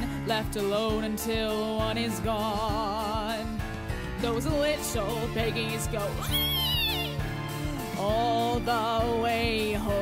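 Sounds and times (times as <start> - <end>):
musical accompaniment: 0.0 - 10.0
person squealing like a pig: 6.2 - 7.2.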